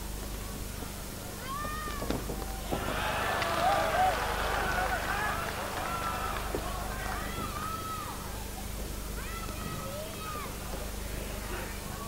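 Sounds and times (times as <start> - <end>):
steady hum and hiss: 0.0 - 12.0
spectator shouting: 2.6 - 8.3.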